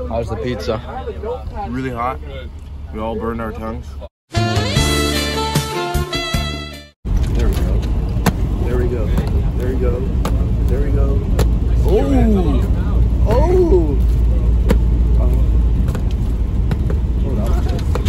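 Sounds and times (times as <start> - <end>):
car cabin rumble: 7.1 - 18.0.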